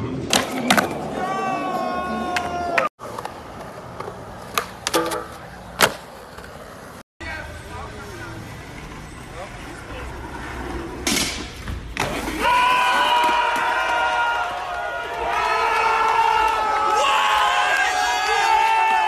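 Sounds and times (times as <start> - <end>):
street noise: 0.0 - 19.0
voices shouting: 1.0 - 2.9.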